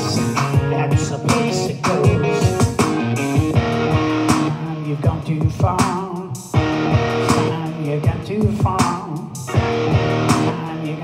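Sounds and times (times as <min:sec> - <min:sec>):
bass guitar: 0:00.0 - 0:11.0
electric guitar: 0:00.0 - 0:11.0
steady drumbeat: 0:00.0 - 0:11.0.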